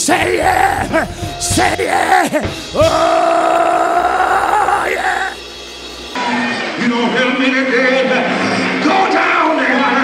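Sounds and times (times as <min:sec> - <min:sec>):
preacher singing high note: 0:00.0 - 0:05.6.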